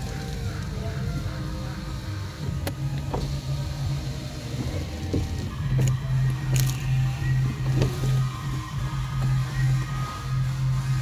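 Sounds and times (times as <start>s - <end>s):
electric window motor humming: 0.0s - 11.0s.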